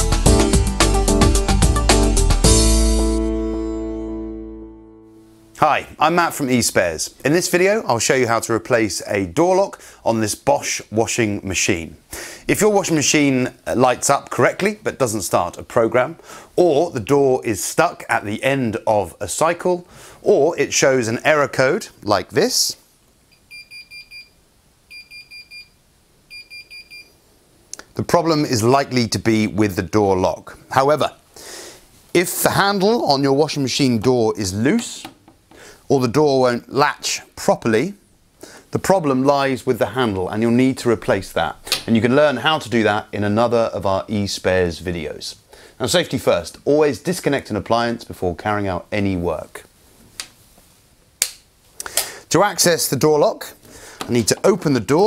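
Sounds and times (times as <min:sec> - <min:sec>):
washing machine alarm beeps: 0:23.3 - 0:27.2.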